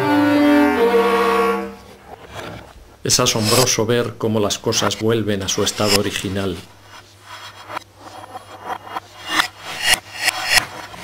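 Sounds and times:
reversed knife sawing through orange: 5.6s - 11.0s.

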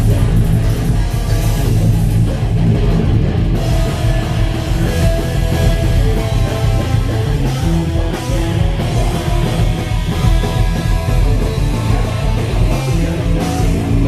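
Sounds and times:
live heavy metal band: 0.0s - 14.0s.

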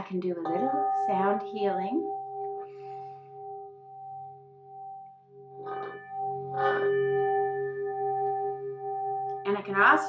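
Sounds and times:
metal singing bowl ringing: 0.3s - 10.0s.

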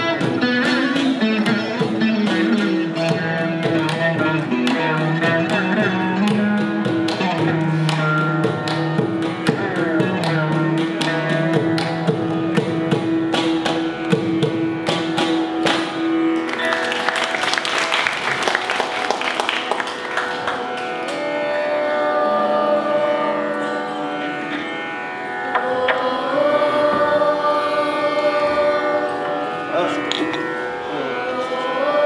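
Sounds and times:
drum strokes: 0.0s - 16.5s
veena melody: 0.0s - 32.0s
steady drone: 20.8s - 32.0s.

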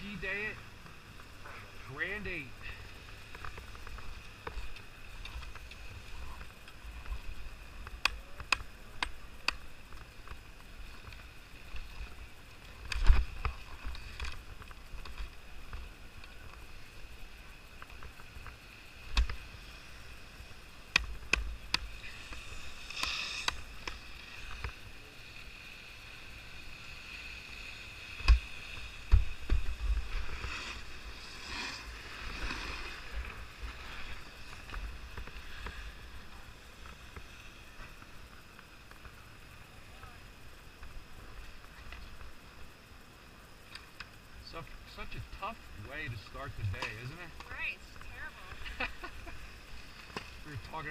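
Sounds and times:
skis scraping over snow: 0.0s - 39.3s.

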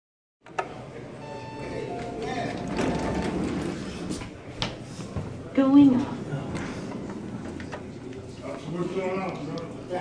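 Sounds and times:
elevator doors sliding open: 0.5s - 4.3s, 6.2s - 8.1s
faint steady tones: 1.0s - 3.8s.

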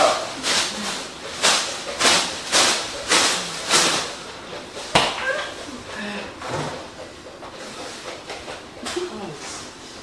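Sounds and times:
person breathing hard and fast: 5.5s - 8.1s.

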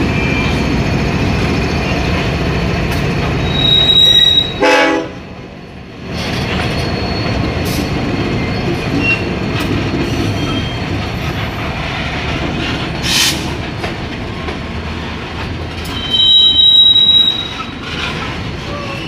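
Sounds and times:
freight train rolling past: 0.0s - 19.0s
high wheel squeal: 3.4s - 4.7s, 6.6s - 9.4s, 10.1s - 10.9s, 15.8s - 19.0s
loud train horn blast: 3.5s - 5.3s.

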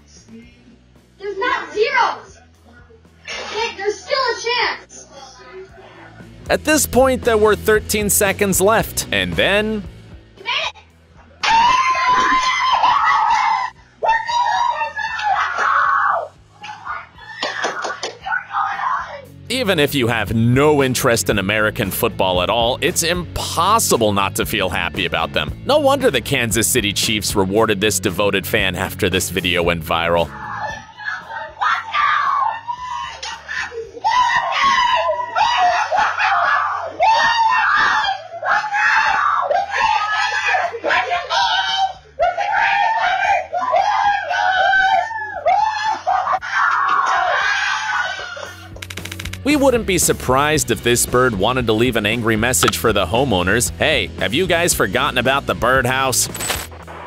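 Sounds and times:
fans screaming with joy: 30.5s - 48.7s.

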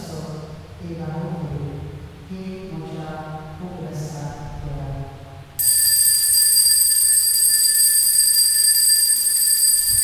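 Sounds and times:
high altar bell ringing: 5.6s - 10.0s.

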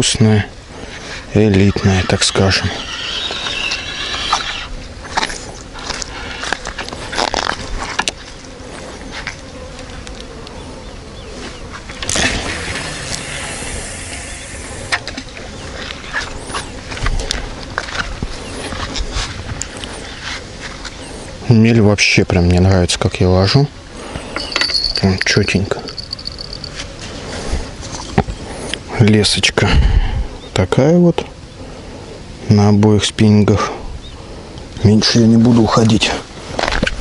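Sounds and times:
fishing line running off reel: 12.1s - 15.2s, 24.3s - 26.8s.

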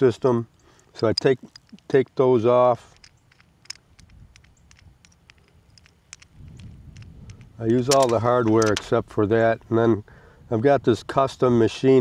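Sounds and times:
small metal clicks and ticks: 0.6s - 9.0s.

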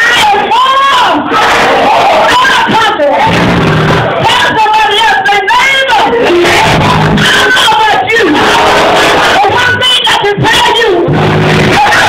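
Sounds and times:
congregation calling out: 0.0s - 3.4s, 4.0s - 12.0s
woman preaching through microphone: 0.0s - 3.5s, 4.2s - 12.0s.

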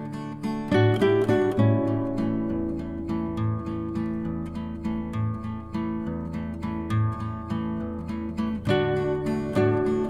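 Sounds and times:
acoustic guitar music: 0.0s - 10.0s.

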